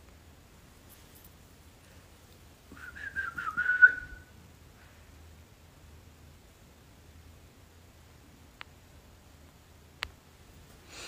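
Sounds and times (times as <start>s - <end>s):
wavering high whistle: 2.8s - 4.3s.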